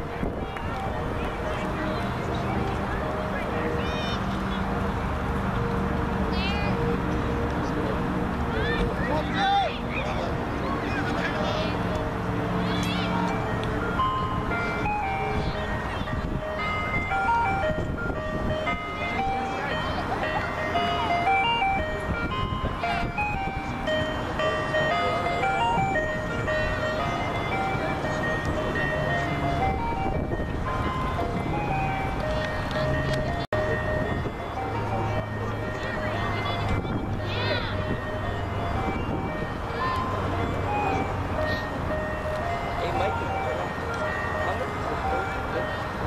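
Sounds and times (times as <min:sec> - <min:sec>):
distant voices: 0:00.0 - 0:46.0.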